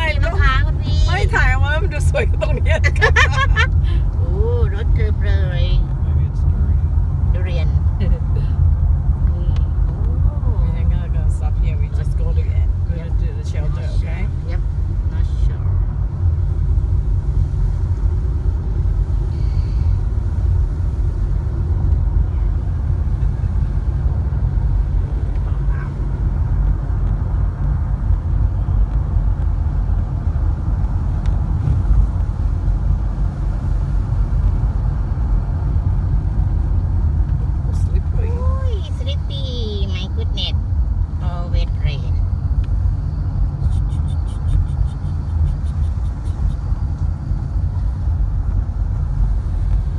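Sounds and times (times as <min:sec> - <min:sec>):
tyre and road noise: 0:00.0 - 0:49.9.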